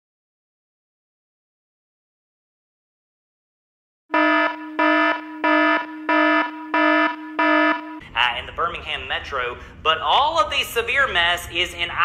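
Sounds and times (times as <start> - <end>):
loud pitched alert beeps: 4.1 - 8.0.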